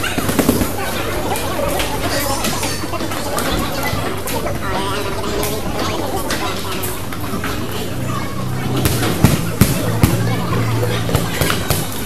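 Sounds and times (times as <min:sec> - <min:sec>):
voices: 0:00.0 - 0:12.0.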